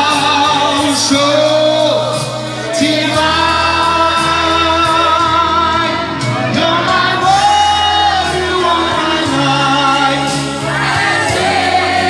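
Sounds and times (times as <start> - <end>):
musical accompaniment with bass: 0.0 - 12.0
person singing slow song: 0.0 - 12.0.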